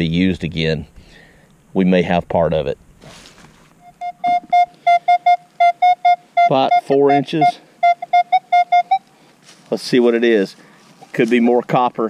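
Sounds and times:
metal detector beeps: 0:03.8 - 0:09.0.

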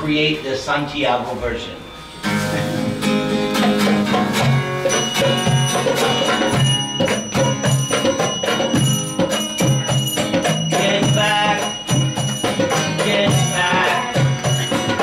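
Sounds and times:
acoustic guitar strumming: 0:01.5 - 0:15.0
metallic hand percussion beat: 0:02.1 - 0:15.0.

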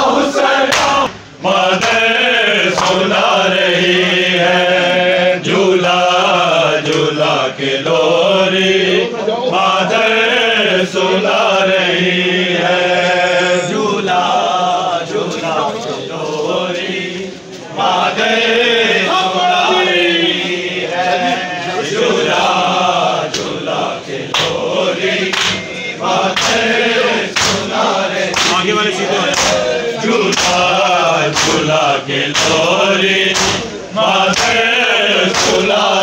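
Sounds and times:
men chanting a lament: 0:00.0 - 0:36.0
chest-beating slaps: 0:00.7 - 0:01.2, 0:02.8 - 0:03.1, 0:25.3 - 0:25.7, 0:27.3 - 0:27.7, 0:28.3 - 0:28.7, 0:29.3 - 0:29.7, 0:30.3 - 0:30.7, 0:31.3 - 0:32.7, 0:33.3 - 0:34.6, 0:35.3 - 0:35.7.

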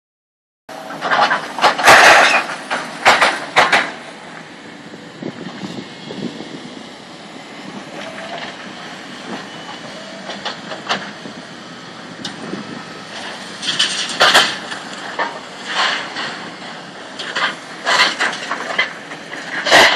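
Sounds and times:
excavator machinery noise: 0:00.7 - 0:19.9.

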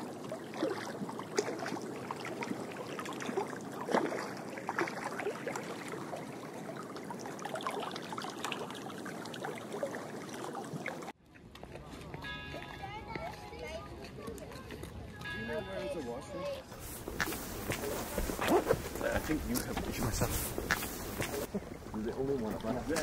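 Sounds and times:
small water splashes: 0:00.0 - 0:11.7, 0:16.7 - 0:23.0
water lapping at rocky shore: 0:00.0 - 0:11.9, 0:14.3 - 0:23.0
outdoor crowd voices: 0:11.2 - 0:23.0.

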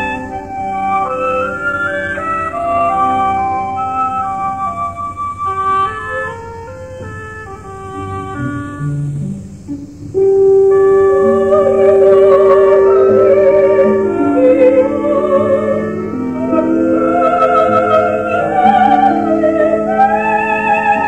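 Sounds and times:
orchestra playing: 0:00.0 - 0:21.0
woodwind melody: 0:00.0 - 0:21.0.

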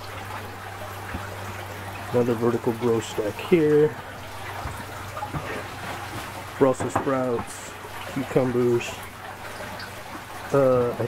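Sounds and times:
low steady hum: 0:00.0 - 0:11.0
water trickling and dripping: 0:00.0 - 0:11.0.

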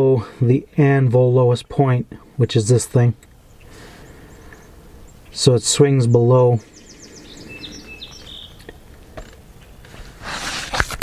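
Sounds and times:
faint bird chirps: 0:03.3 - 0:08.9
camera handling rustle and click: 0:08.7 - 0:11.0.

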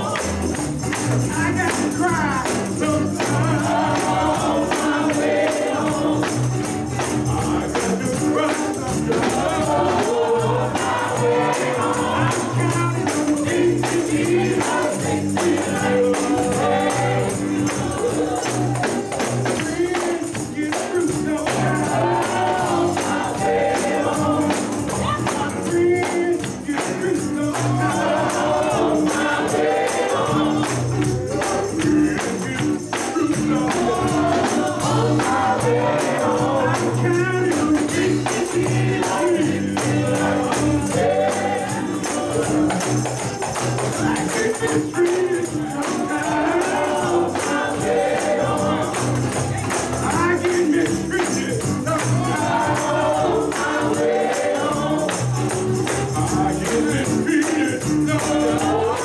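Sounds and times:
drums: 0:00.0 - 0:59.0
backing singers: 0:01.3 - 0:59.0
lead singer: 0:01.3 - 0:59.0.

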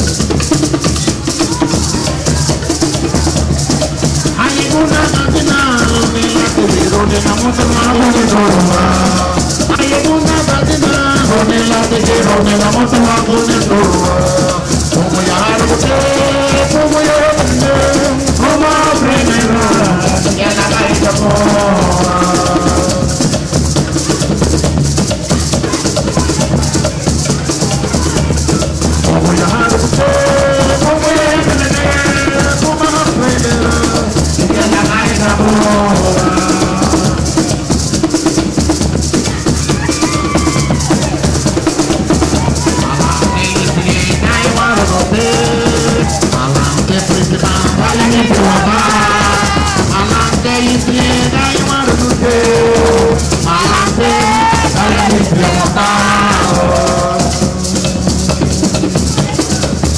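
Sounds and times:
man singing: 0:00.0 - 0:24.3, 0:25.6 - 0:38.5, 0:39.1 - 0:59.9
hand drums: 0:00.0 - 0:59.9
maracas shaking: 0:00.0 - 0:59.9.

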